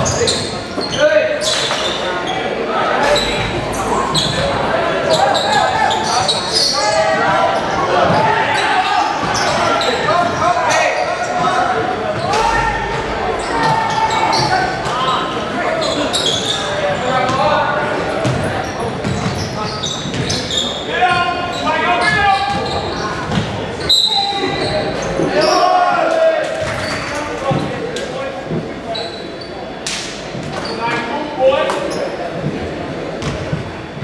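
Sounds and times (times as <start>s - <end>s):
shouts and talk echoing: 0.0s - 34.0s.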